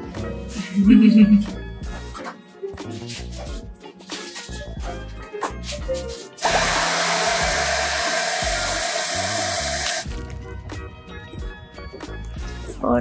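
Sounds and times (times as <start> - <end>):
hair dryer blowing: 6.4 - 10.1.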